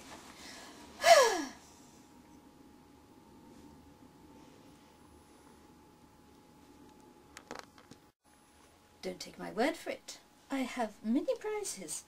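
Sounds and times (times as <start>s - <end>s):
woman's breathy sighing exhale: 0.4s - 1.7s.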